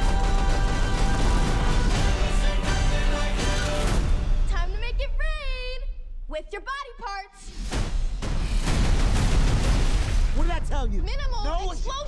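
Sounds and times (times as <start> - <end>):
large explosion with debris: 7.8 - 10.7.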